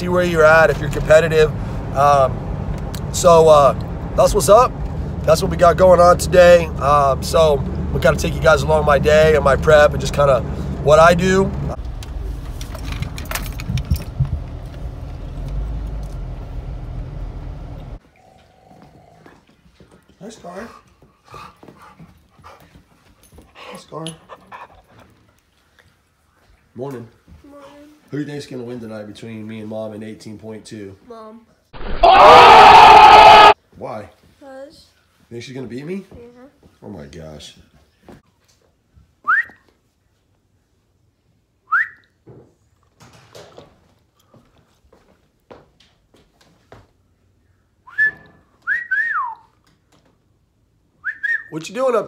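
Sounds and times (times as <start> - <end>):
dog panting: 20.4 - 25.4
man whistling: 39.2 - 39.6, 41.7 - 42.2, 47.8 - 49.6, 51.0 - 51.6.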